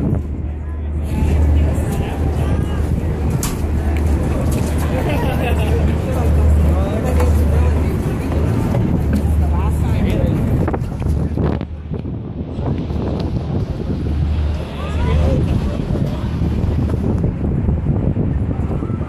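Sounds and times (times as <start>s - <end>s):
passengers chattering: 0.0s - 19.0s
steady low rumble: 0.0s - 19.0s.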